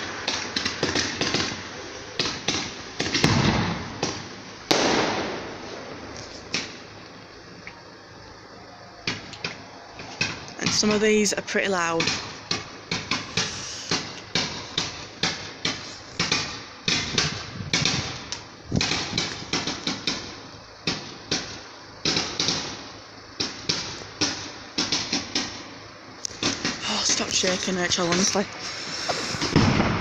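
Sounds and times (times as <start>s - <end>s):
fireworks bangs and crackles: 0.0s - 7.3s, 9.0s - 30.0s.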